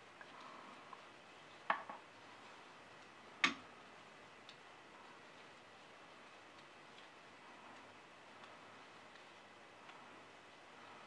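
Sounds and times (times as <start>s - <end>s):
knitting needles clicking: 6.4s - 10.2s.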